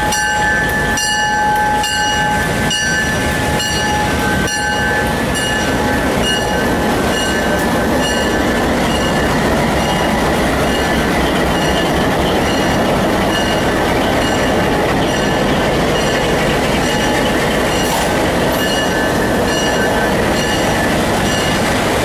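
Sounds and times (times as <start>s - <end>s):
diesel locomotive engine running: 0.0s - 22.0s.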